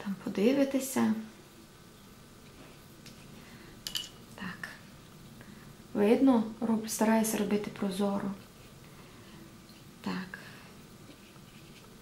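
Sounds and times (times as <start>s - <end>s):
brush on paper: 11.0s - 12.0s.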